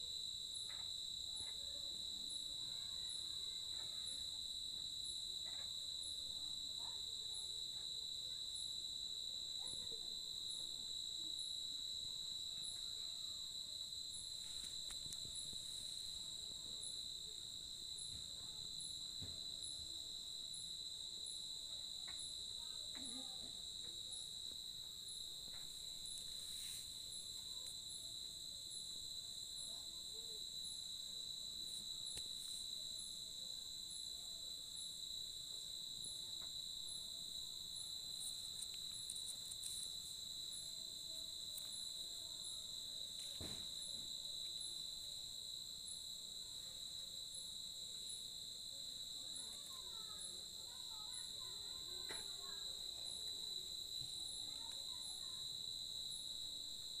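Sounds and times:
high insect chirp: 0:00.0 - 0:57.0
crickets trilling: 0:00.1 - 0:57.0.

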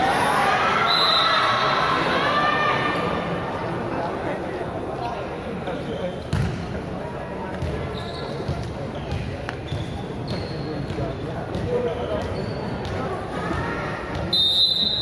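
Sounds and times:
voices echoing in a hall: 0:00.0 - 0:15.0
shoes squeaking on floor: 0:07.6 - 0:13.0.

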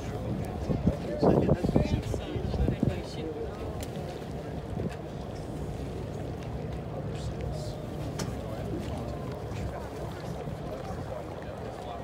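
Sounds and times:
wind on microphone: 0:00.0 - 0:03.3
boat engine rumble: 0:00.0 - 0:12.0.

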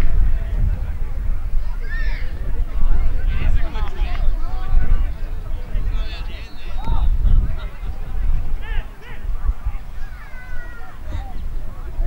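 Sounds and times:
wind on microphone: 0:00.0 - 0:12.0
crowd calling: 0:03.0 - 0:11.9.

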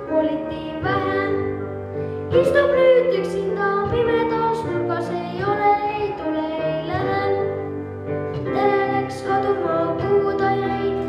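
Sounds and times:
boy singing into microphone: 0:00.0 - 0:01.7, 0:02.3 - 0:11.0
instrumental accompaniment: 0:00.0 - 0:11.0.

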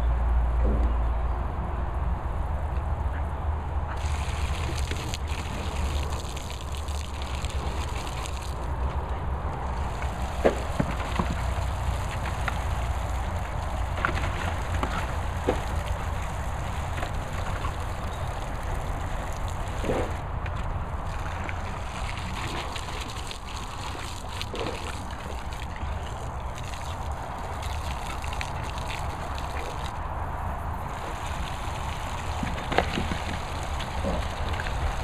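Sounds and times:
water spraying hiss: 0:04.0 - 0:08.8, 0:09.7 - 0:20.2.

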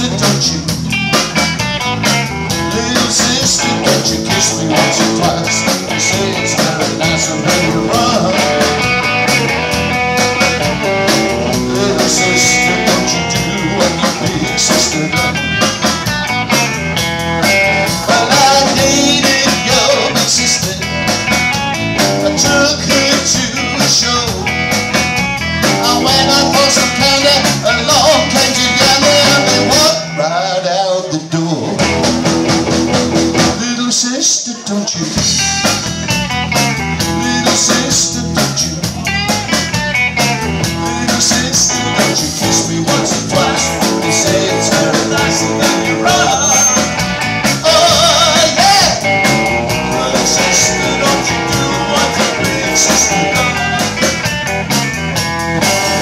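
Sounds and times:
drum kit: 0:00.0 - 0:30.2, 0:31.6 - 0:33.8, 0:34.9 - 0:56.0
electric bass guitar: 0:00.0 - 0:34.1, 0:34.7 - 0:56.0
electric guitar: 0:00.0 - 0:56.0.

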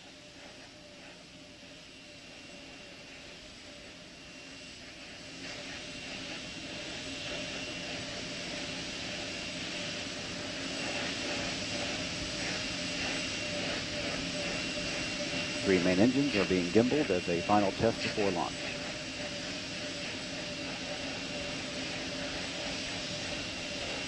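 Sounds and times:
held whining tones: 0:05.4 - 0:24.0.

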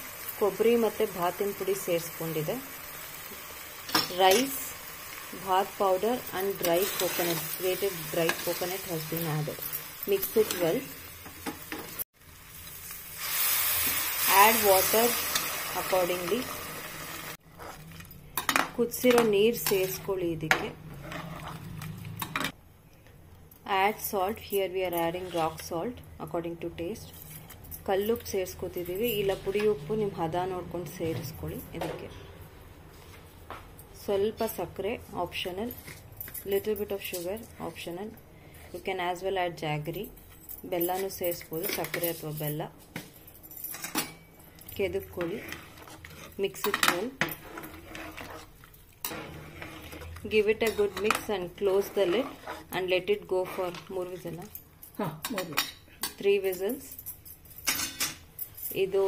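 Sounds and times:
metal ladle scraping a pot: 0:20.9 - 0:22.5, 0:45.2 - 0:54.2
metal spoon clinking on pot: 0:43.7 - 0:47.8, 0:50.4 - 0:52.4, 0:55.1 - 0:58.8.

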